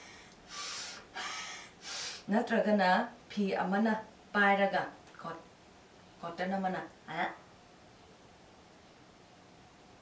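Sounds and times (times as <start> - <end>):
person breathing forcefully: 0.0 - 2.2.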